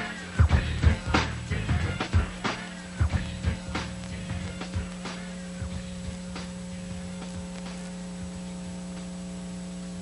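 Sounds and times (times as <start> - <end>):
low electrical hum: 0.0 - 10.0
thin high whine: 0.0 - 10.0.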